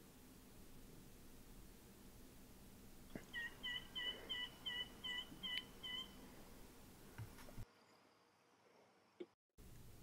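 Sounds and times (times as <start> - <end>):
bird calling short notes: 3.3 - 6.2.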